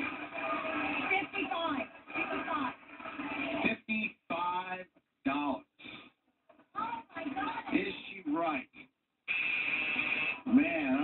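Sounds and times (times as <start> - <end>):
indistinct voices from television: 0.0 - 11.0.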